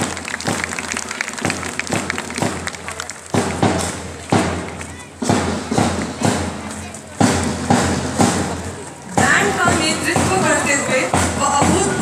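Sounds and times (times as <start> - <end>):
marching drum thuds: 1.4 - 12.0.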